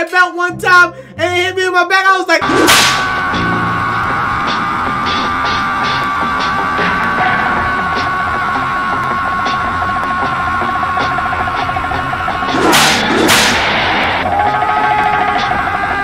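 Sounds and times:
man screaming: 0:02.1 - 0:16.0
loud harsh bursts: 0:02.4 - 0:16.0
rock music: 0:02.4 - 0:16.0.

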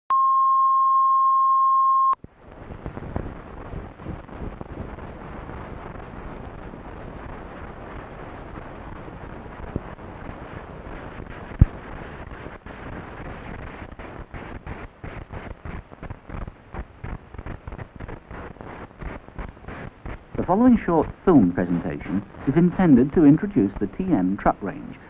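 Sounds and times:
film soundtrack hiss and crackle: 0:02.1 - 0:25.0.

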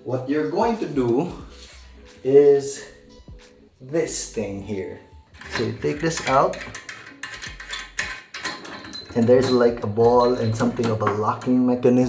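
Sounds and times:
small metal clicks and rattles: 0:05.4 - 0:12.0.

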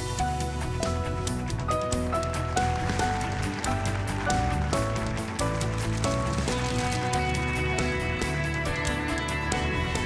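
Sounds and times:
instrumental theme music: 0:00.0 - 0:10.0.

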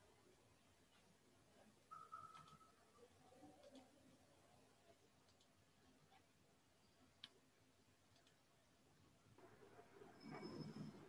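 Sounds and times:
faint clicks: 0:03.5 - 0:04.0, 0:05.2 - 0:06.3, 0:07.0 - 0:07.4, 0:08.1 - 0:08.4.

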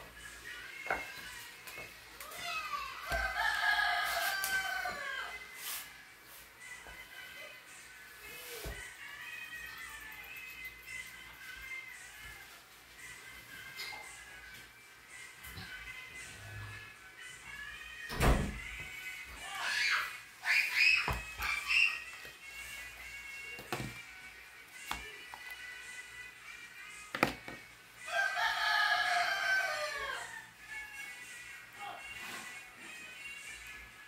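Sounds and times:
rooster crowing: 0:03.0 - 0:05.5, 0:28.1 - 0:30.5.

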